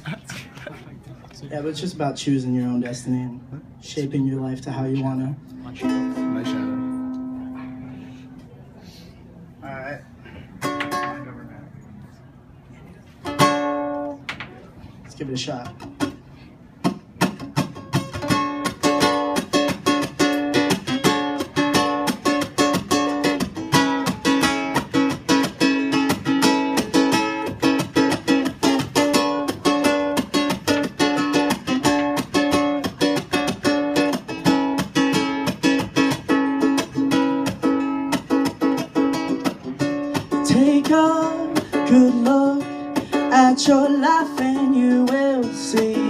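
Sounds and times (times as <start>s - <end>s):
ukulele strummed: 5.5s - 7.8s, 10.6s - 11.3s, 13.3s - 14.2s, 16.8s - 46.0s.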